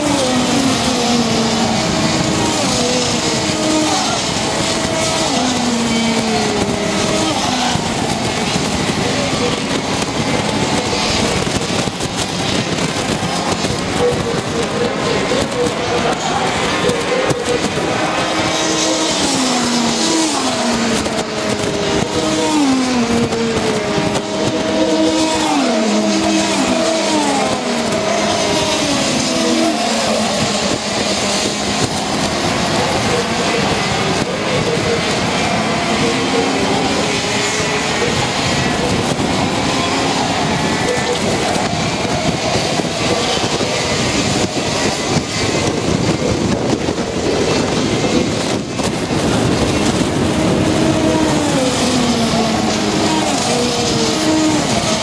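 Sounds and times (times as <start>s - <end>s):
racing kart engines: 0.0s - 55.0s.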